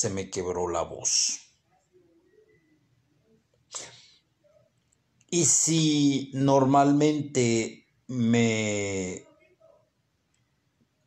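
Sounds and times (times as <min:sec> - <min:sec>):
man speaking: 0:00.0 - 0:01.5, 0:05.3 - 0:09.4
man taking a sharp breath: 0:03.7 - 0:04.2.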